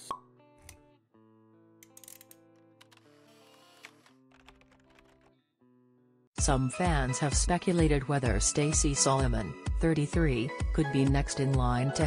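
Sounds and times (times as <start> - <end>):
small clicks: 1.8 - 5.3.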